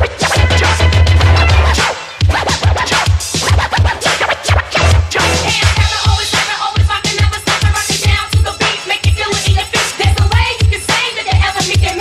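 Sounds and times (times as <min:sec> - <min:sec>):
hip hop beat bass line: 0:00.0 - 0:10.8
turntable scratching: 0:00.0 - 0:12.0.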